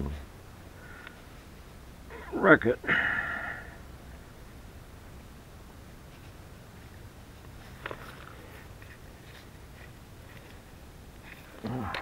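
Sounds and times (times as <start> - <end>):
low steady background noise: 0.0 - 12.0
man speaking: 2.2 - 2.9.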